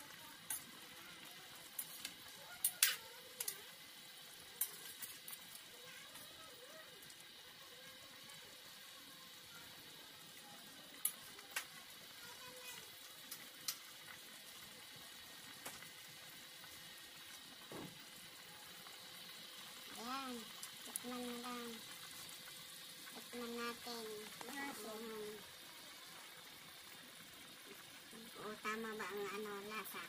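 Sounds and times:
stew sizzling in a pot: 0:00.0 - 0:30.0.

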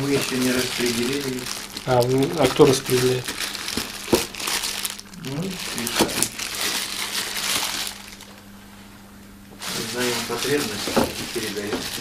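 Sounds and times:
man speaking: 0:00.0 - 0:03.2, 0:09.7 - 0:12.0
crinkling and rustling: 0:00.0 - 0:08.5, 0:09.6 - 0:12.0.

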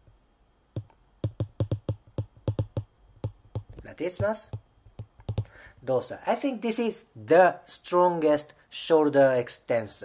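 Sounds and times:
stylus clicking on glass screen: 0:00.8 - 0:05.5.

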